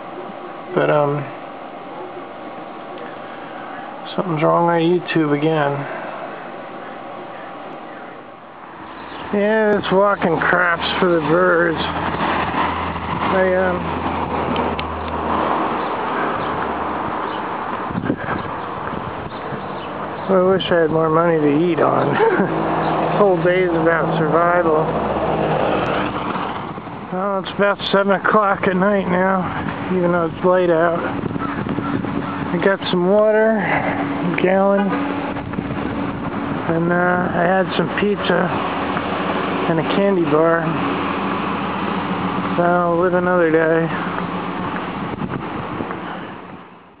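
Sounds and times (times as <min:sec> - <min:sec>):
vehicle driving by: 0:03.1 - 0:47.0
wind on microphone: 0:10.4 - 0:20.6, 0:24.9 - 0:27.2, 0:28.6 - 0:32.8, 0:33.6 - 0:37.4, 0:44.0 - 0:46.8.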